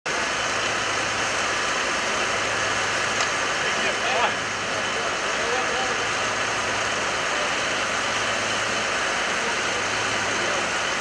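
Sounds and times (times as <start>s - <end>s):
low engine hum: 0.1s - 11.0s
hose jets hissing: 0.2s - 11.0s.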